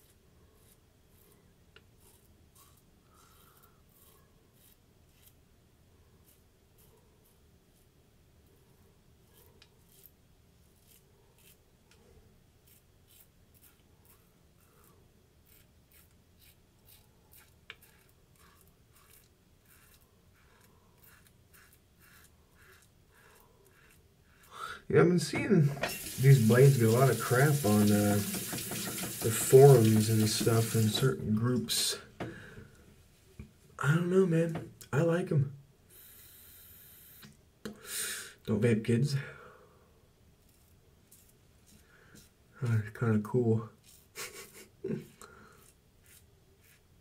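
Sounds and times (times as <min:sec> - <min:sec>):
razor scraping stubble: 0:00.0 - 0:05.4, 0:09.2 - 0:11.6, 0:12.6 - 0:24.5, 0:25.8 - 0:31.1, 0:40.4 - 0:42.4, 0:43.7 - 0:46.9.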